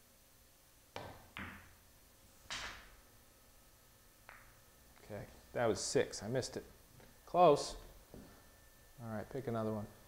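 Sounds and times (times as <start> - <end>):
cue tip striking ball: 0.9 - 1.8, 2.5 - 3.0, 4.2 - 4.6
pool balls clicking: 0.9 - 1.8, 2.4 - 3.0, 4.2 - 5.1.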